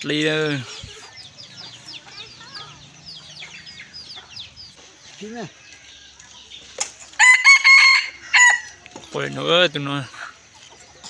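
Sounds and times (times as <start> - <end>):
chickens chirping: 0.0 - 11.0
chickens clucking: 0.0 - 11.0.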